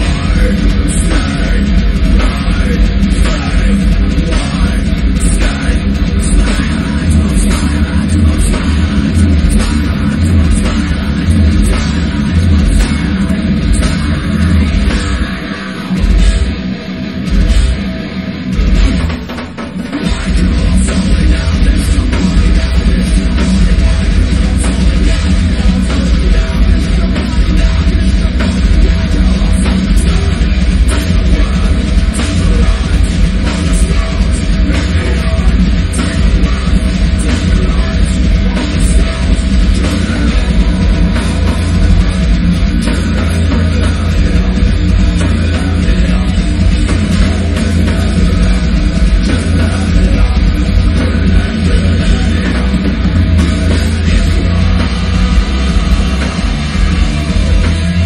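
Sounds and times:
heavy metal band playing: 0.0 - 58.0.

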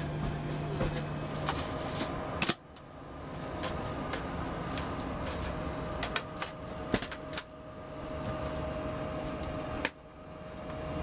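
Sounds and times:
cabin air hum: 0.0 - 11.0.

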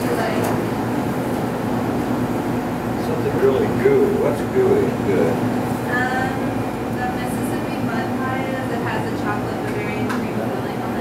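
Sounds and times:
steady low hum: 0.0 - 11.0
background chatter of voices: 2.9 - 11.0.

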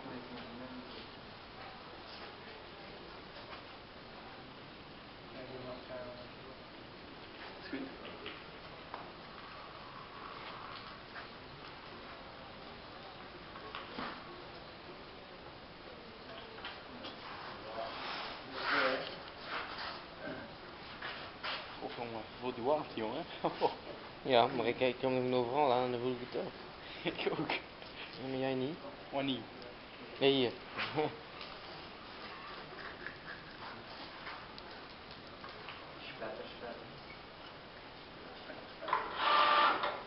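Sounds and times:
steady hiss: 0.0 - 40.0
faint ticking and crackling: 31.3 - 38.1.

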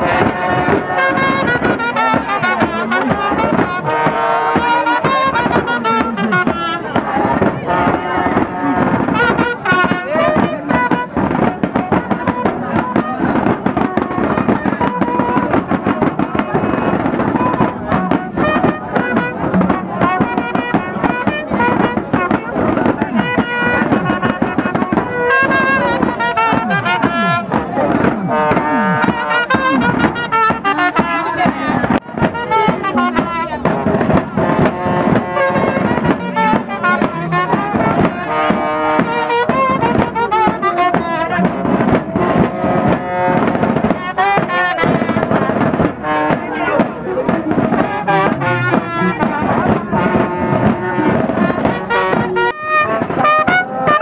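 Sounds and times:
music with brass instruments: 0.0 - 54.0.

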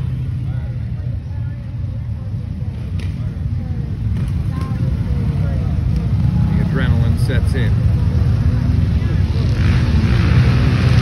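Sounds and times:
off-road vehicle engine rumble: 0.0 - 11.0.

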